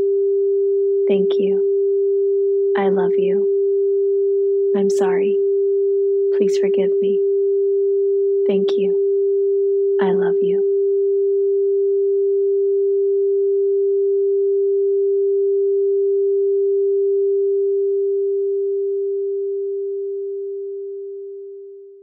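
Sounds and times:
steady sine tone: 0:00.0 - 0:22.0.

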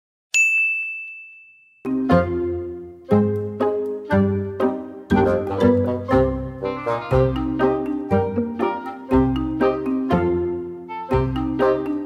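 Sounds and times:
music with low plucked notes: 0:01.9 - 0:12.0.

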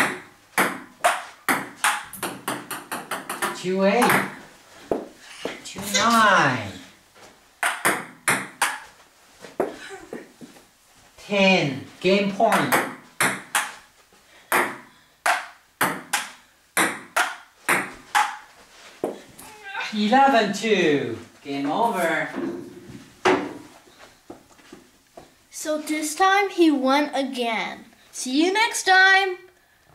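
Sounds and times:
table tennis ball hits: 0:00.0 - 0:05.1, 0:07.6 - 0:08.9, 0:12.4 - 0:13.9, 0:14.5 - 0:19.2.

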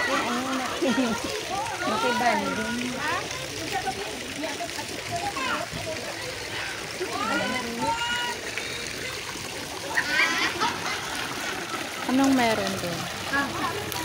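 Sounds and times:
people talking: 0:00.0 - 0:11.0, 0:12.1 - 0:14.0
fountain jets splashing: 0:00.0 - 0:14.0.

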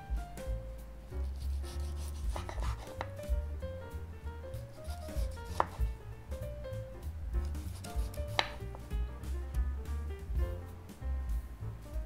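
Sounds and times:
soft background music: 0:00.0 - 0:12.0
knife striking cutting board: 0:01.3 - 0:03.4, 0:04.8 - 0:06.0, 0:07.4 - 0:09.0.

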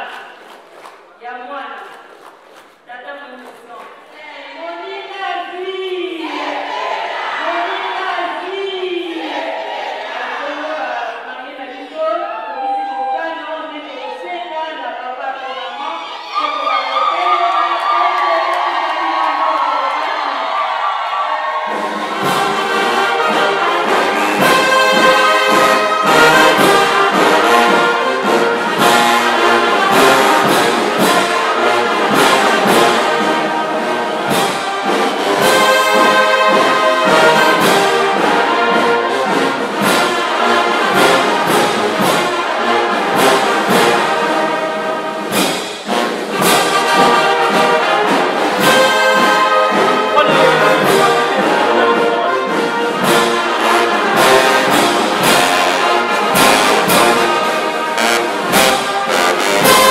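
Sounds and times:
brass band music with steady beat: 0:18.4 - 0:59.9.

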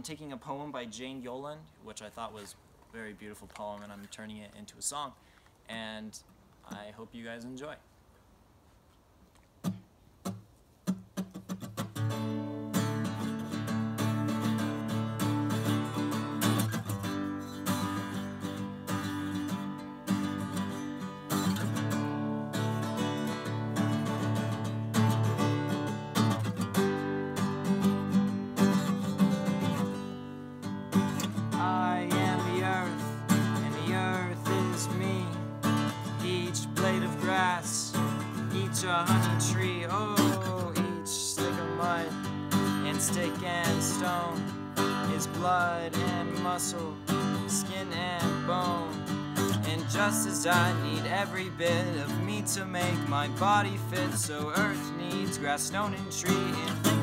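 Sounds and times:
acoustic guitar playing: 0:09.6 - 0:57.0.

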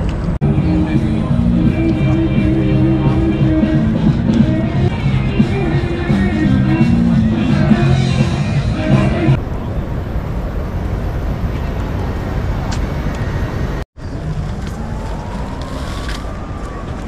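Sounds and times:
background music: 0:00.4 - 0:09.4.

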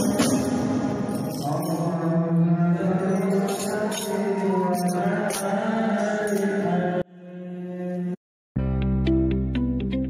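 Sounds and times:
men singing into microphones: 0:00.0 - 0:08.2.

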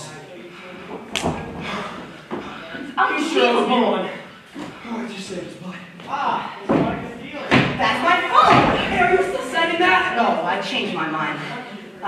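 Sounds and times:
actors' voices on stage: 0:00.0 - 0:12.0.

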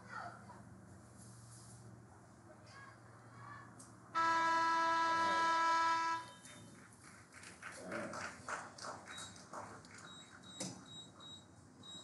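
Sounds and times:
scoreboard horn blast: 0:04.2 - 0:06.4.

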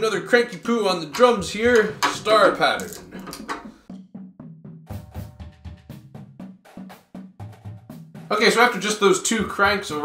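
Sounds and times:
drum key clicking on tension rods: 0:01.1 - 0:03.8
drum shells ringing: 0:01.1 - 0:03.8.

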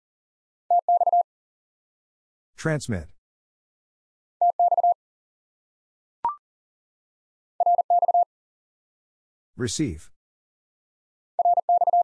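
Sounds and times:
morse code tone: 0:00.7 - 0:01.2, 0:11.4 - 0:12.0.

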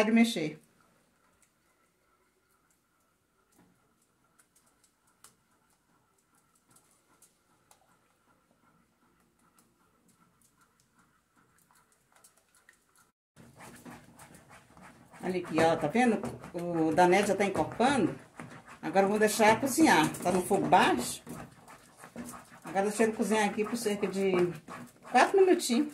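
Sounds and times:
spoon stirring in metal pan: 0:13.4 - 0:25.9.

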